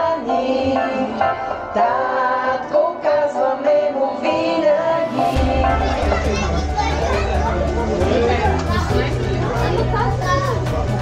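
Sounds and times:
crowd chatter indoors: 0.0s - 11.0s
music with singing: 0.0s - 11.0s.

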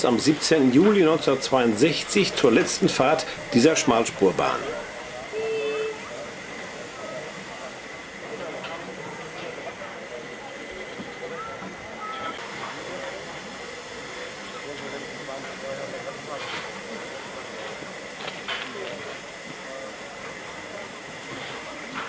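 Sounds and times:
steam locomotive hissing: 0.0s - 22.0s.

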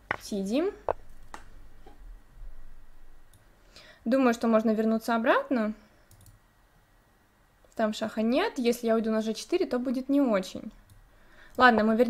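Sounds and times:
low room hum: 0.0s - 12.0s
faint computer mouse click: 6.1s - 6.4s.

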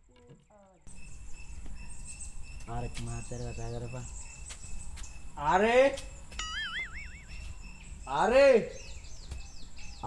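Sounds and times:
wobbling whistle sound effect: 6.4s - 7.3s.

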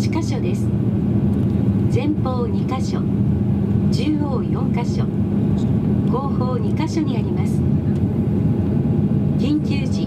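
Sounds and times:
aircraft cabin rumble: 0.0s - 10.0s
cabin announcement: 3.9s - 5.4s.

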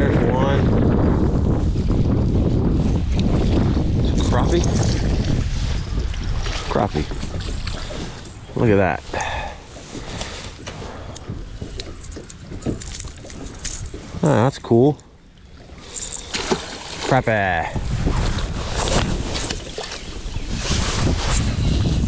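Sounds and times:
wind rumbling on microphone: 0.0s - 22.0s.

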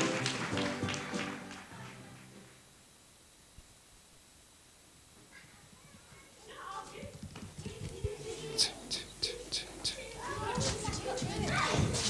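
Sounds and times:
music: 0.0s - 2.6s
children shouting: 7.6s - 12.0s.

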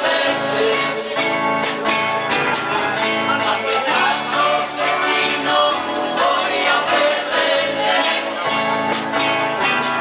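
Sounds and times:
live rock band playing: 0.0s - 10.0s
people singing: 0.0s - 10.0s.

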